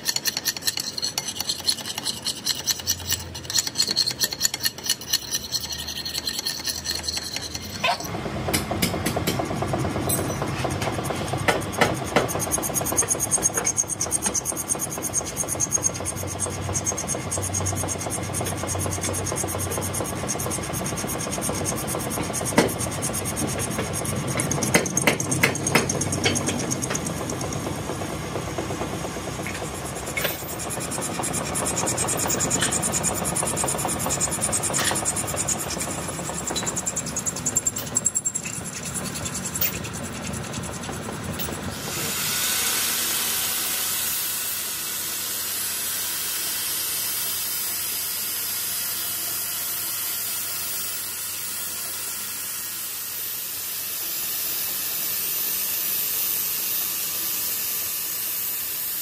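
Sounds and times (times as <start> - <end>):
hand file rasping on metal: 0.0 - 8.1, 12.4 - 27.2, 30.2 - 41.6
lathe cutting tool cutting metal: 29.4 - 48.7.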